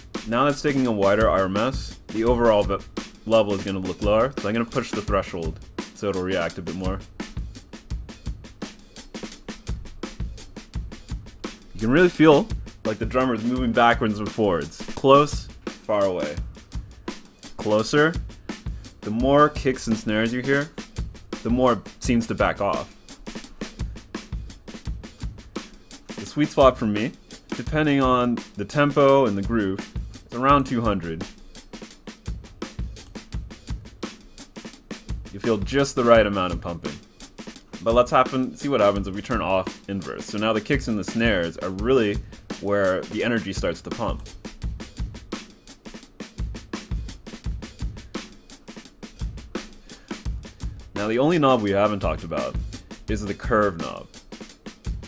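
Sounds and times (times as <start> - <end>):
distorted drum loop: 0.0 - 55.0.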